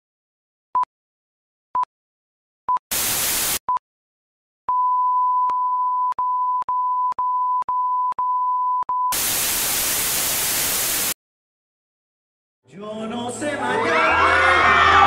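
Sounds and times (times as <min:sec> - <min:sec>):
loud white-noise static: 0:02.9 - 0:03.6, 0:09.2 - 0:11.2.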